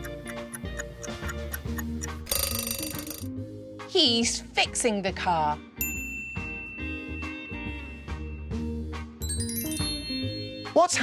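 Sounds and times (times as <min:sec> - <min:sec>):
background music: 0:00.0 - 0:11.0
alarm bell ringing: 0:02.3 - 0:03.3.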